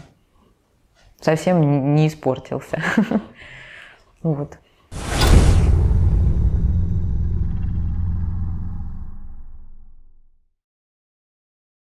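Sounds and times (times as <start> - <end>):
deep rumbling sound effect: 4.9 - 10.4.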